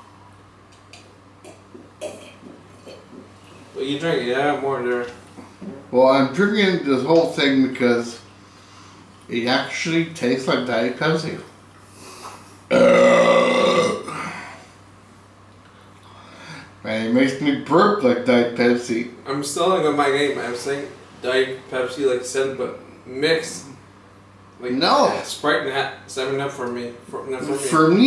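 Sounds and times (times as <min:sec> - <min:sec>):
man swallowing: 0:00.9 - 0:03.4, 0:12.7 - 0:14.5
man burping loudly: 0:12.7 - 0:14.6.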